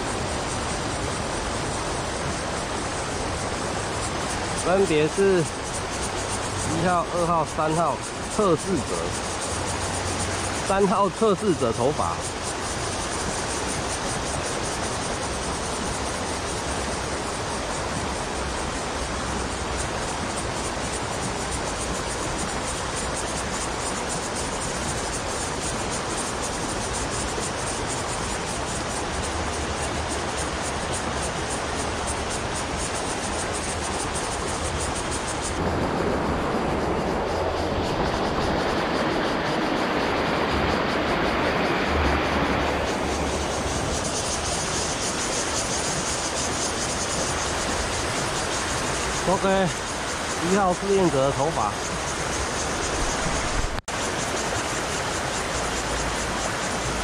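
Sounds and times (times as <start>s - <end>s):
river water rushing: 0.0s - 57.0s.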